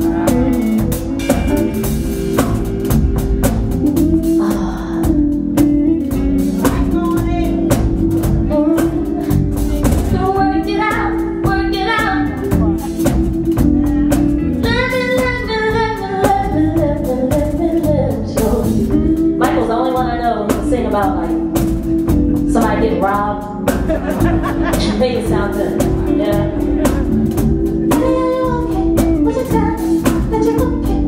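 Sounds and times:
person singing: 0.0 - 2.7, 8.4 - 20.6, 24.7 - 31.0
band playing: 0.0 - 31.0.

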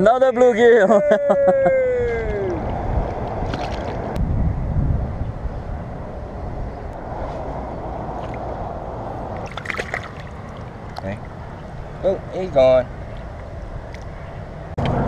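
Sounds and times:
wind rumbling on microphone: 1.5 - 15.0
sharp clicks and splashes: 2.6 - 4.2, 9.4 - 11.4
small waves lapping: 3.3 - 4.2, 9.2 - 12.0.

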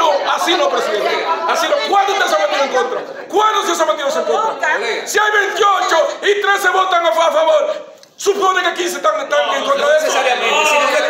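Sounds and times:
people arguing loudly: 0.0 - 11.0
man shouting: 9.4 - 11.0.

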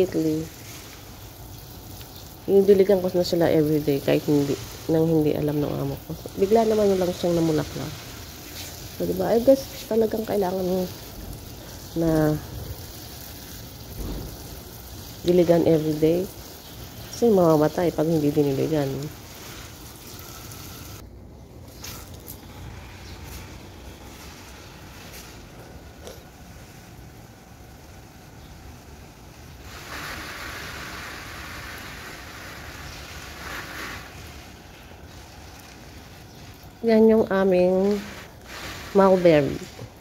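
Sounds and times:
hose spraying water on plants: 0.0 - 21.0, 21.6 - 40.0.

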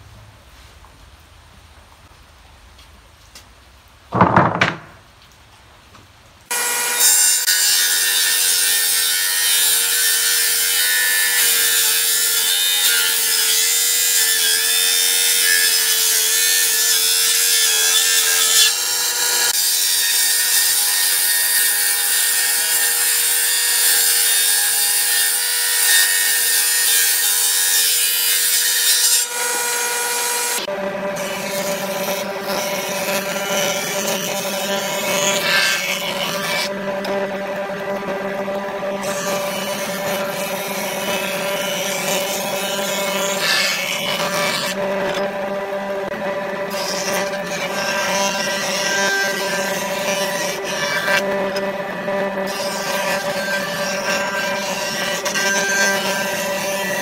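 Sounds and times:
jointer-planer cutting timber: 6.5 - 57.0.

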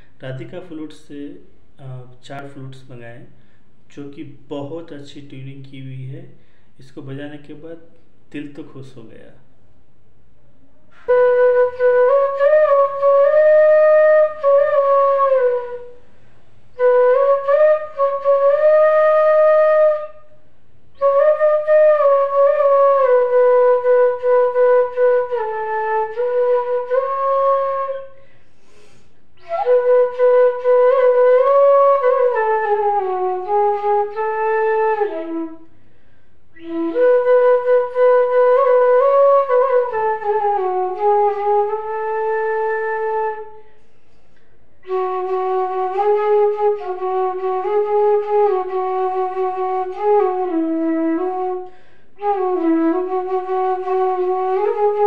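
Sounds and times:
bamboo flute melody: 10.9 - 16.0, 16.8 - 20.4, 21.0 - 35.7, 36.6 - 43.8, 44.8 - 55.0.

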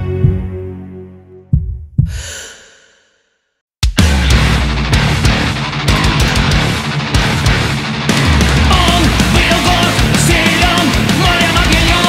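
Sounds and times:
sharp breathy sigh: 2.0 - 3.3
heavy metal band playing: 4.0 - 12.0.

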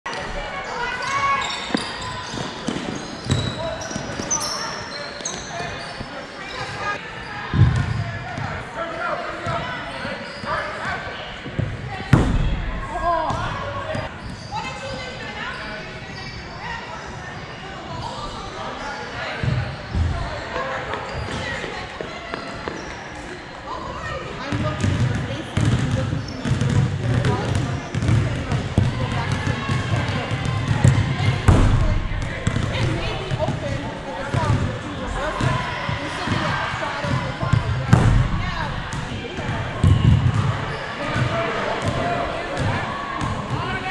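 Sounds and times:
players calling out: 0.2 - 15.0.

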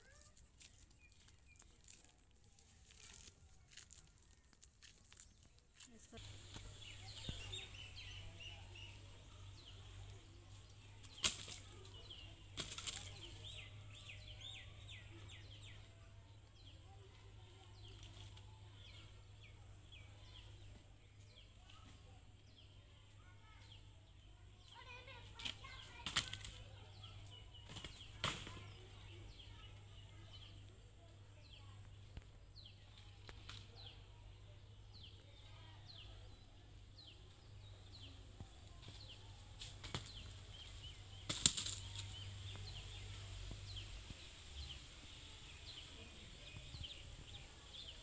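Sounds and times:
fronds crunching: 0.0 - 7.9, 10.5 - 13.8, 38.8 - 46.7
birds chirping: 0.0 - 48.0
dry palm fronds rustling: 0.1 - 7.6, 10.2 - 13.6, 38.9 - 47.3.

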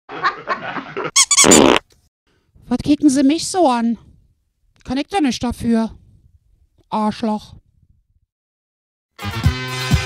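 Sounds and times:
high-pitched squeaks: 1.2 - 1.8.

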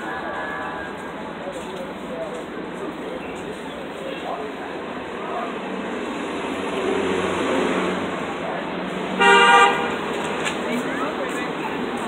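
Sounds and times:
city street traffic: 0.0 - 12.0
car horn honk: 9.2 - 10.0.

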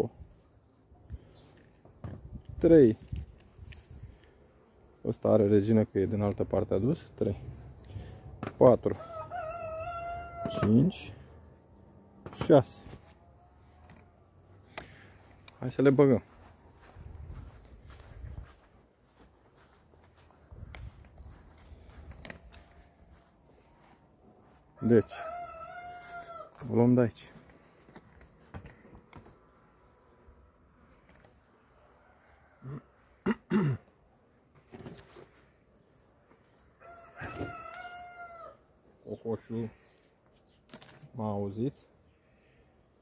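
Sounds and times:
rooster crowing: 8.9 - 11.0, 24.4 - 26.6, 31.8 - 33.0, 36.8 - 38.6
footsteps on grass: 14.9 - 28.5.

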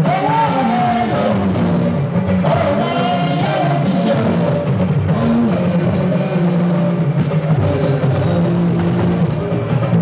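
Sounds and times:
live band with electric guitars: 0.0 - 10.0.

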